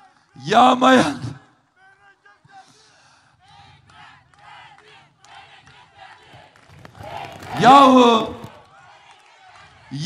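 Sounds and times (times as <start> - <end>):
crowd shouting: 3.4 - 10.0.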